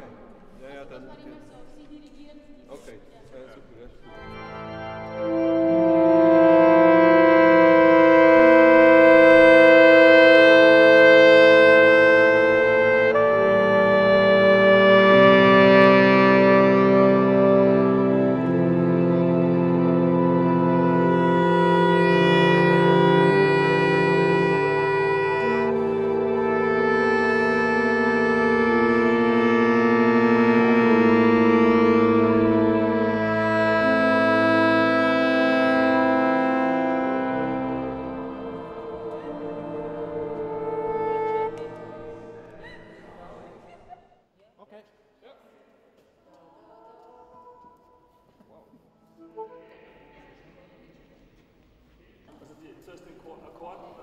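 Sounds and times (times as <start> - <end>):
soft ensemble music: 0.0 - 44.0, 47.0 - 54.0
pipe organ chords: 4.0 - 42.6.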